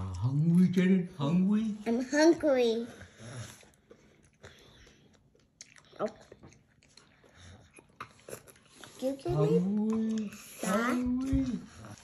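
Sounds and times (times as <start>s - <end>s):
child chewing: 0.0s - 1.0s, 1.6s - 12.0s.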